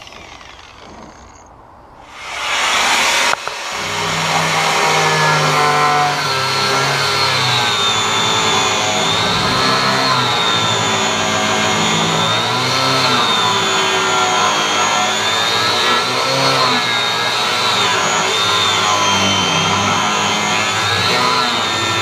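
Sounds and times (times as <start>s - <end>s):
angle grinder grinding metal: 0.0s - 22.0s.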